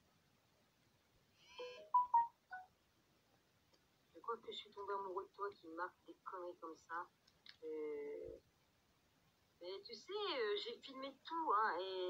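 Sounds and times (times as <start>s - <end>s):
electronic phone chirp: 1.6s - 2.7s
quick phone beeps: 1.6s - 2.7s.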